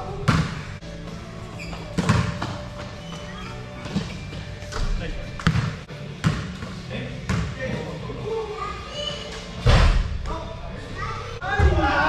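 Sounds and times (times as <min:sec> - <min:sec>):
basketball bouncing on gym floor: 0:00.2 - 0:00.6, 0:02.0 - 0:02.6, 0:05.4 - 0:06.6, 0:07.3 - 0:07.5
players' voices: 0:10.2 - 0:12.0.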